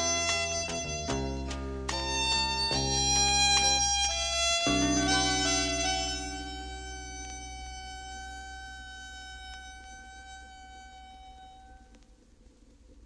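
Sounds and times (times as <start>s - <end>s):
held chord on vinyl record: 0.0s - 13.0s
vinyl surface hiss and clicks: 11.8s - 13.0s.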